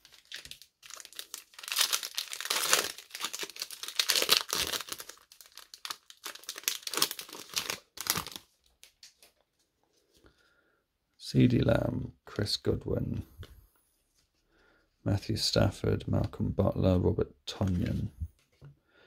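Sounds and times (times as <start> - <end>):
foil wrapper tearing and crinkling: 0.0 - 9.0.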